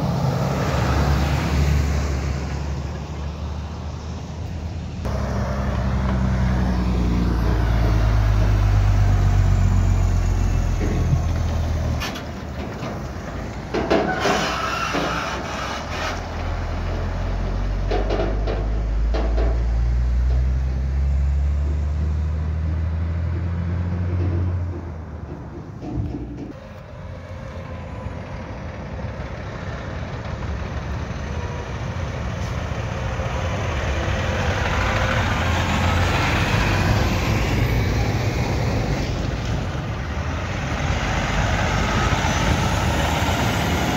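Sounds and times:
diesel truck engines: 0:00.0 - 0:43.9.

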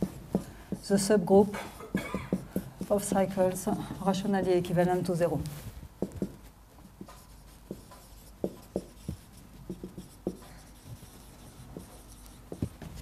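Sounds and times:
marker writing on whiteboard: 0:00.0 - 0:13.0.

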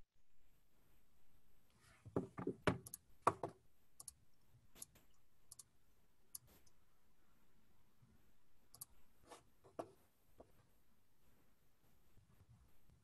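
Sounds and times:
quiet background noise: 0:00.0 - 0:13.0.

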